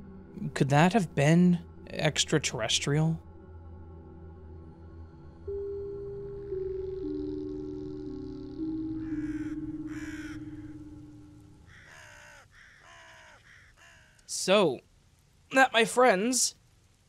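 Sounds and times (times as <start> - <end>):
low held notes: 0.0 - 11.8
crow-like caws: 8.9 - 14.3.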